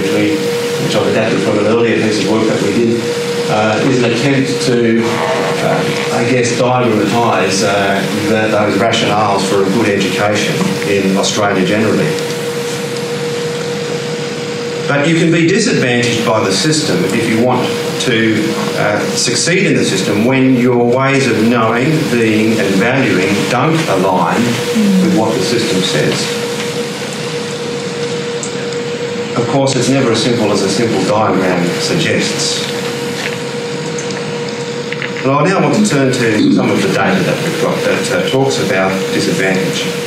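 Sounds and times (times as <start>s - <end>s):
man's voice: 0.0s - 12.2s, 14.9s - 26.3s, 35.2s - 39.9s
mechanical hum: 0.0s - 40.0s.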